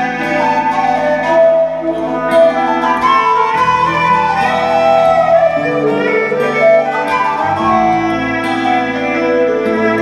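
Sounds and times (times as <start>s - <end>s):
fiddle melody: 0.0s - 10.0s
folk band playing: 0.0s - 10.0s.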